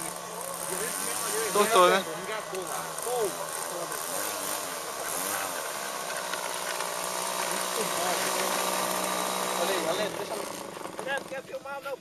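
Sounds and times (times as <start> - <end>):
model airplane engine idling: 0.0 - 12.0.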